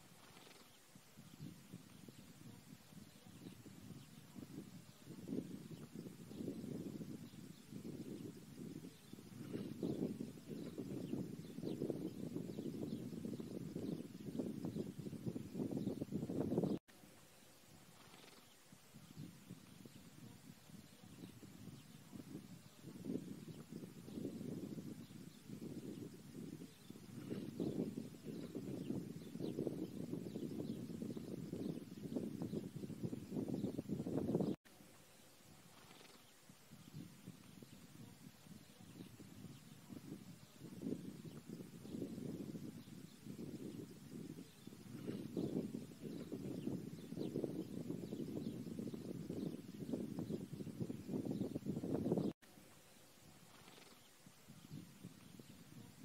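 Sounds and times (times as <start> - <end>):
faint hiss: 16.9 - 28.2, 34.7 - 42.0, 52.4 - 56.0.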